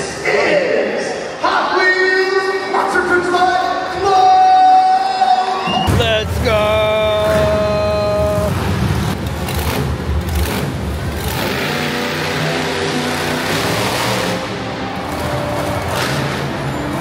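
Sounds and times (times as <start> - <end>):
monster truck engines running: 5.9 - 17.0.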